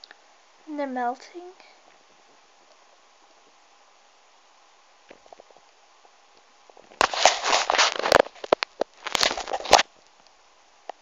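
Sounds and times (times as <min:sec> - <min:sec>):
fingers rubbing on phone: 0:07.0 - 0:08.3.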